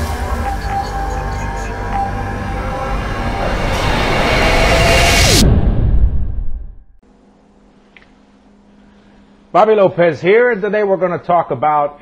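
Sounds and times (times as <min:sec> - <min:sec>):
cinematic music with heavy bass: 0:00.0 - 0:06.9
rising noise swell: 0:00.0 - 0:07.0.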